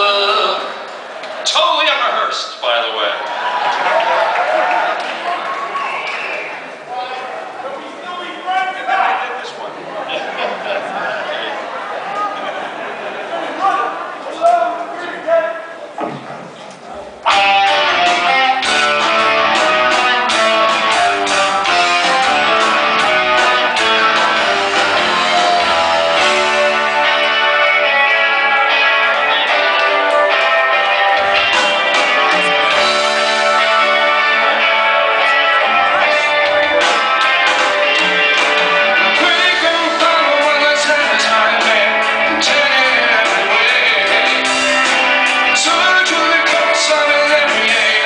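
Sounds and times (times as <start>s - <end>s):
indistinct voices in echoing hall: 0.0s - 48.0s
rock band with electric guitar: 16.0s - 48.0s.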